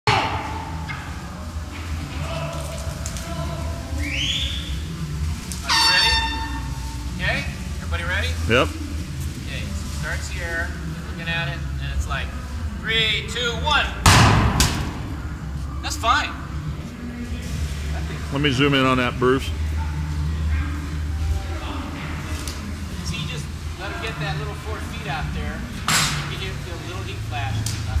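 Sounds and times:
steady low hum: 0:00.1 - 0:28.0
voices: 0:00.1 - 0:28.0
workshop background noise: 0:00.1 - 0:28.0
loud horn blast: 0:05.5 - 0:07.1.

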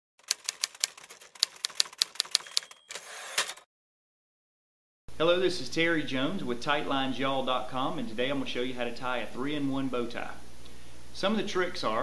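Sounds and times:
typewriter keys clacking: 0:00.2 - 0:03.6
typewriter carriage sliding: 0:00.2 - 0:03.7
typewriter bell ring: 0:01.6 - 0:03.6.

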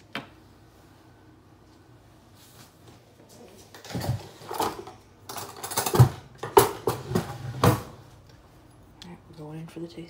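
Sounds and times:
kitchen utensils clattering: 0:03.8 - 0:08.0.

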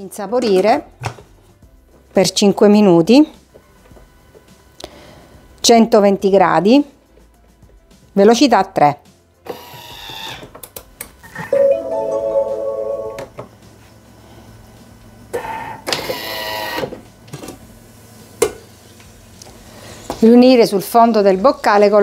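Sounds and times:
steady electronic tone: 0:11.4 - 0:13.3
kitchen machine mechanism whirr: 0:15.3 - 0:22.0.

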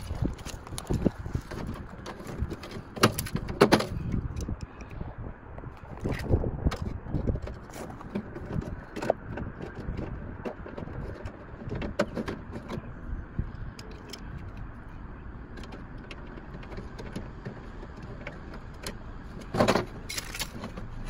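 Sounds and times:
rattling scrape: 0:00.0 - 0:04.4, 0:05.9 - 0:12.8, 0:15.8 - 0:21.0.

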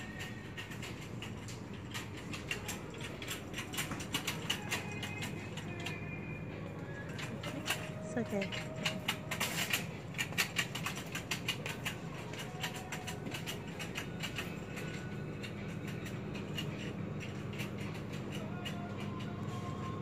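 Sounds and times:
small clicks and rustles: 0:00.0 - 0:20.0.

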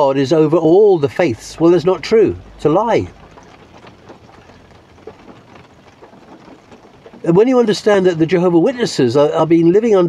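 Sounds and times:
rain on vehicle roof: 0:00.0 - 0:10.0.

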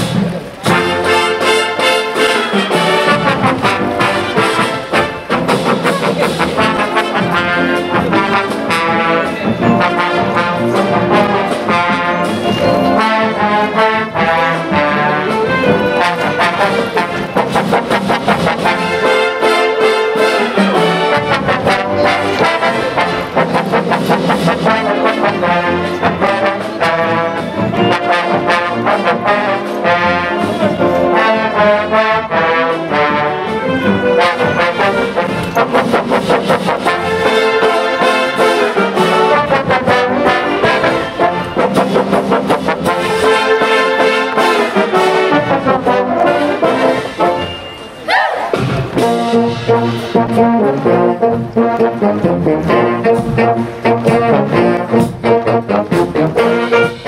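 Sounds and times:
brass marching band playing: 0:00.0 - 0:57.0.

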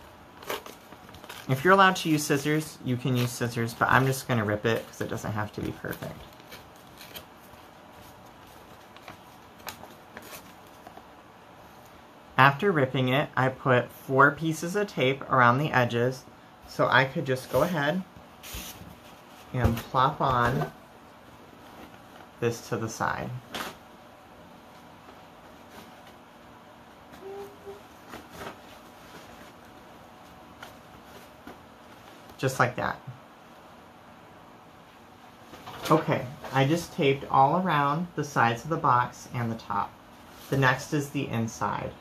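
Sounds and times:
paper crackling and rustling: 0:00.3 - 0:02.1, 0:03.0 - 0:11.1.

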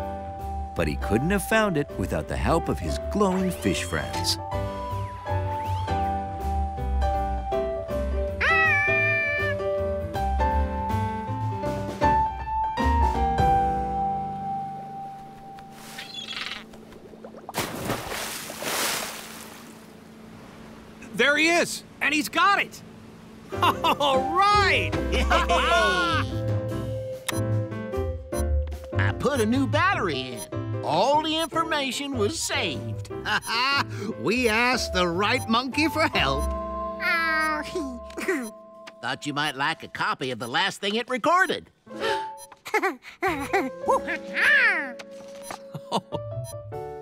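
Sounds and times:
background music: 0:00.0 - 0:16.0, 0:23.4 - 0:47.0
bird squawk: 0:08.4 - 0:09.6, 0:15.9 - 0:16.8
cartoon monkey chattering: 0:08.4 - 0:09.6
cartoon monkey call: 0:08.4 - 0:09.7, 0:25.3 - 0:26.4
splashing water rushing: 0:16.6 - 0:20.6.

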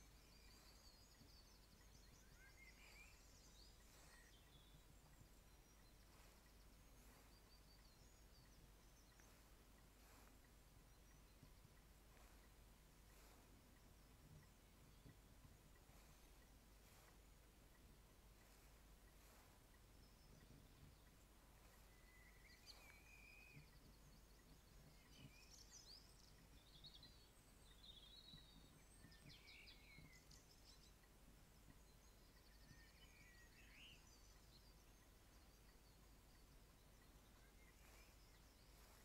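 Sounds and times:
bird chirps and twittering: 0:00.0 - 0:39.0
low steady hum: 0:00.0 - 0:39.0.

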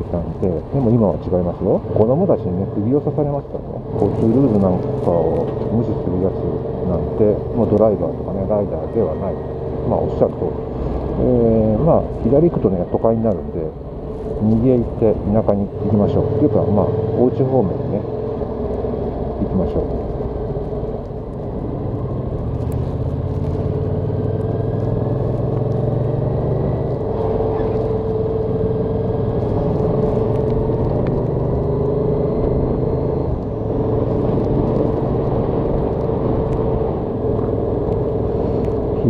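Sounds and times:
road and wind noise: 0:00.0 - 0:39.0
motorcycle engine running: 0:21.8 - 0:39.0.

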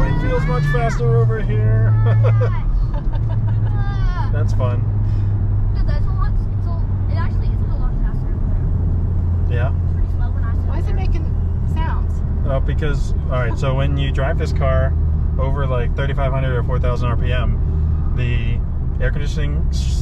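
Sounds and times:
car engine low drone: 0:00.0 - 0:20.0.

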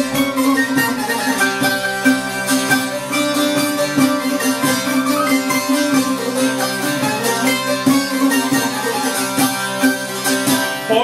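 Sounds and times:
plucked lutes playing folk tune: 0:00.0 - 0:11.0.

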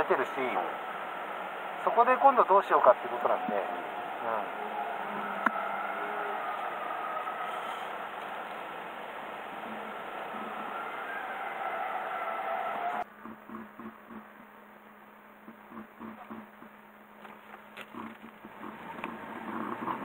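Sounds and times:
faint soft pulses: 0:00.0 - 0:17.0
car engine humming in cabin: 0:00.0 - 0:20.0.

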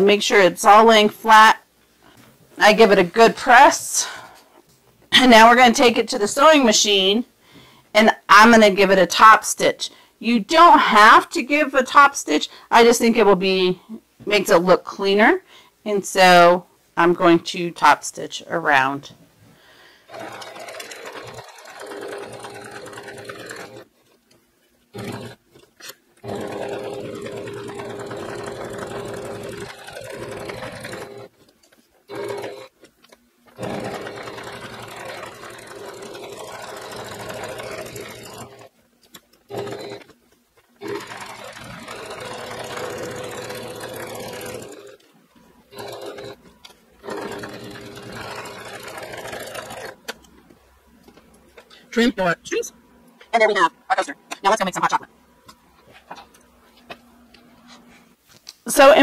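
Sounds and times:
sewing machine stitching: 0:20.1 - 0:23.9, 0:24.9 - 0:31.5, 0:32.1 - 0:40.2, 0:40.8 - 0:45.1, 0:45.7 - 0:50.4.

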